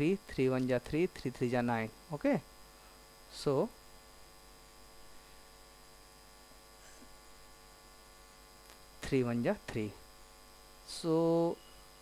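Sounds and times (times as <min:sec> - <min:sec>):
faint mains hum: 0:00.0 - 0:12.0.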